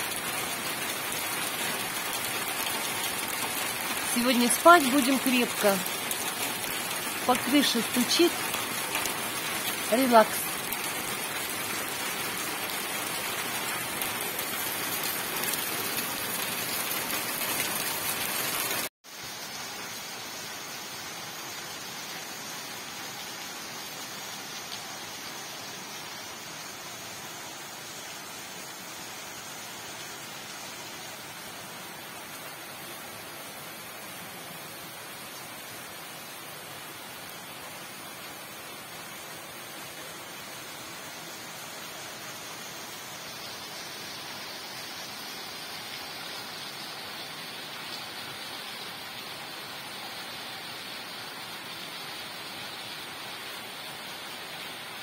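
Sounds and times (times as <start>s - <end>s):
rain on a roof: 0.0s - 55.0s.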